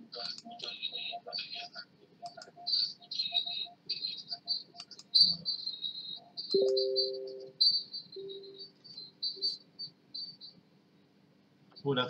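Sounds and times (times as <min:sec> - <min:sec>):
faint clicks: 0:00.2 - 0:00.8, 0:02.2 - 0:02.6
high-pitched insect chirping: 0:02.6 - 0:10.5.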